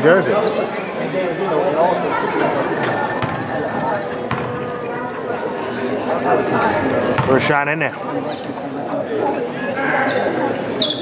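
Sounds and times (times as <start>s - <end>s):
voices echoing in a gymnasium: 0.0s - 11.0s.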